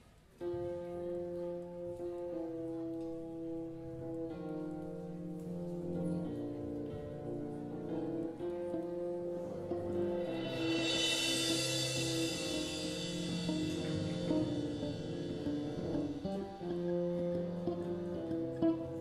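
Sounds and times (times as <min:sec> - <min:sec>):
electric guitar: 0:00.1 - 0:19.0
drums: 0:09.7 - 0:16.7
bass: 0:09.7 - 0:19.0.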